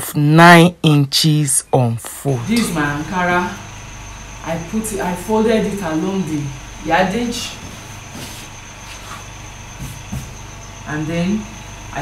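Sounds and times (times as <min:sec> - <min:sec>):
steady background hum: 0:00.0 - 0:12.0
thin high whine: 0:00.0 - 0:12.0.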